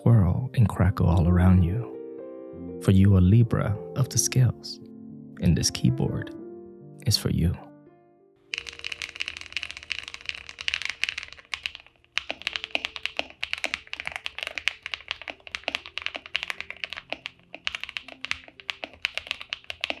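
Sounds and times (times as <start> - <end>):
fast typing on mechanical keyboard: 8.5 - 20.0.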